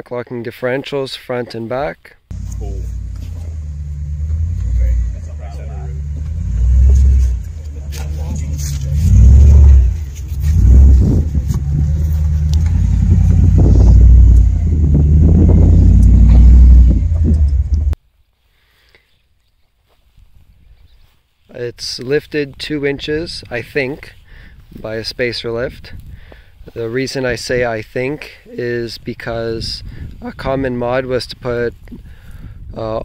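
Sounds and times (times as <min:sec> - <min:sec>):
engine revving deep rumble: 0:02.3 - 0:18.0.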